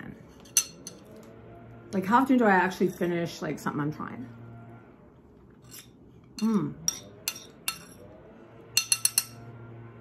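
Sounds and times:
fork clinking on plate: 0:08.8 - 0:09.4.

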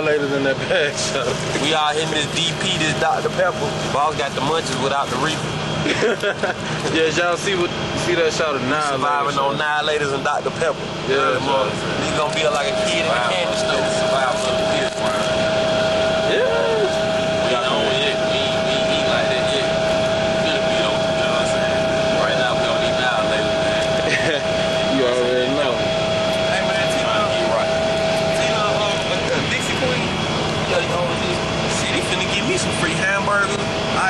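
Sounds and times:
coach engine drone: 0:00.0 - 0:34.0
indistinct talk: 0:00.0 - 0:34.0
thin steady whine: 0:00.0 - 0:34.0.

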